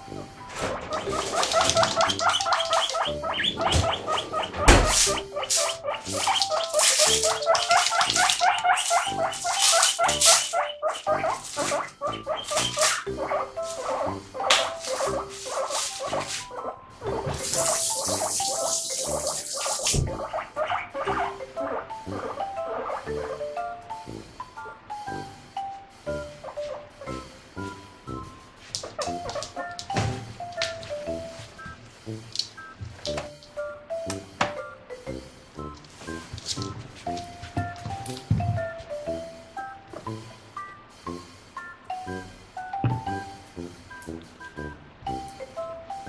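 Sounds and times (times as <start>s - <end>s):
guinea pig squeaking: 0.0s - 25.4s, 26.1s - 40.3s
rustling hiss: 17.3s - 20.0s, 30.2s - 33.6s.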